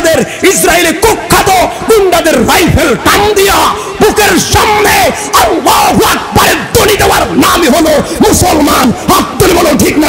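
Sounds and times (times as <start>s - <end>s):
man shouting into a microphone: 0.0s - 10.0s.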